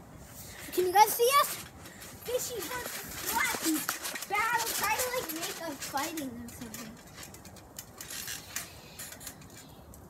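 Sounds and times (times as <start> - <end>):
rustling on a trampoline mat: 0.2 - 9.4.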